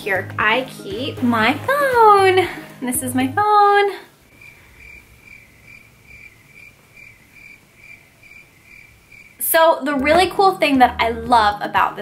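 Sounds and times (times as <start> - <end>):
cricket chirping: 4.3 - 9.4.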